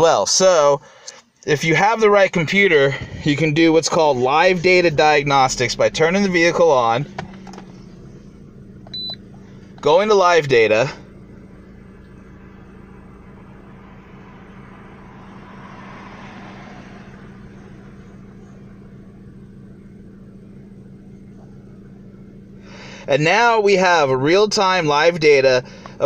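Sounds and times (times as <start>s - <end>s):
car engine idling: 0.0s - 26.0s.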